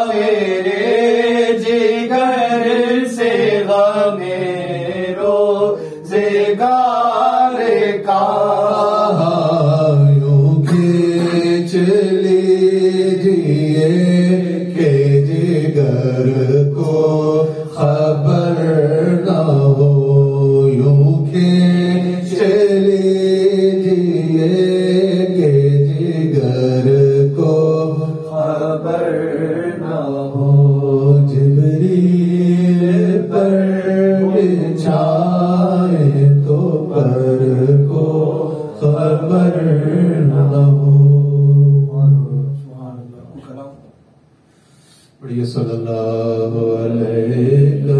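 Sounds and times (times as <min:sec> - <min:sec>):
man chanting unaccompanied: 0:00.0 - 0:43.9, 0:45.2 - 0:47.9.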